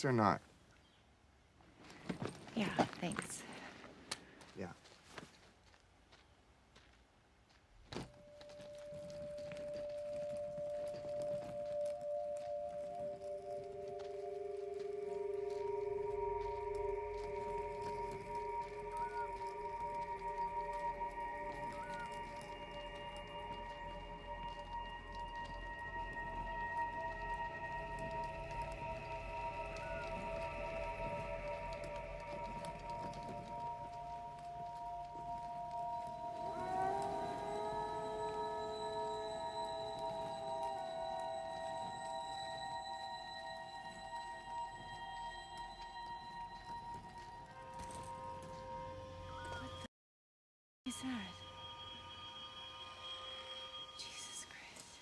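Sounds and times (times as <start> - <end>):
sustained drone tones: 8.6 - 49.7.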